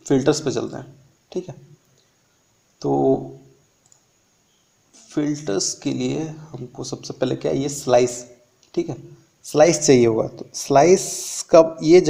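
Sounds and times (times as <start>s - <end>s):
faint mouse clicks: 3.8s - 4.1s.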